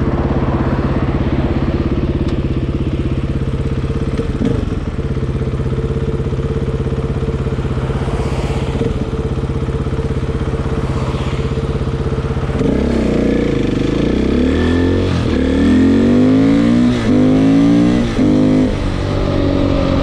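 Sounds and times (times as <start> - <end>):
motorcycle engine idling: 0.0 - 14.3.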